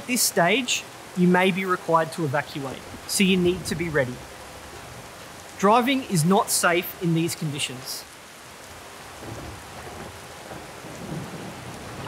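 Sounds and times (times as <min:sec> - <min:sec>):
rain falling: 0:00.0 - 0:12.0
thunder rumbling: 0:02.8 - 0:05.0, 0:09.1 - 0:12.0.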